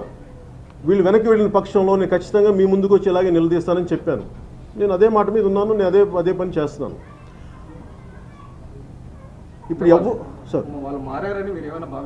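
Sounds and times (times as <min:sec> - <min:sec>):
low room noise: 0:00.0 - 0:12.0
man speaking: 0:00.8 - 0:07.0.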